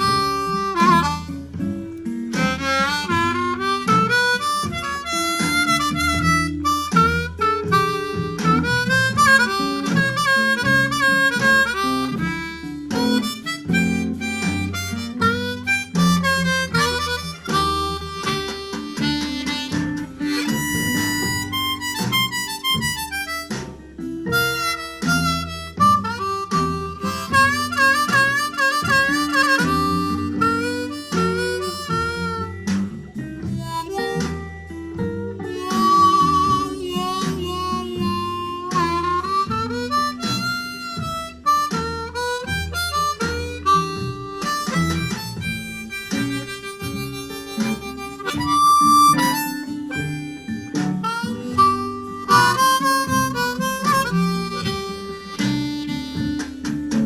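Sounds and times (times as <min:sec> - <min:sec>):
backing track with guitar: 0:00.0 - 0:57.0
blues harmonica: 0:00.0 - 0:57.0.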